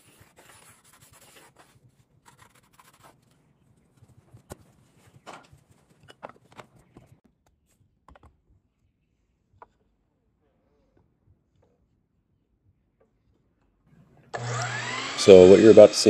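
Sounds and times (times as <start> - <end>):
pencil scratching on wood: 0.0 - 5.9.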